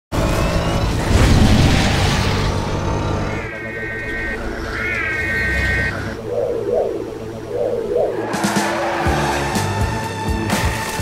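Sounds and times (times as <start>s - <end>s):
wailing siren: 3.3s - 9.3s.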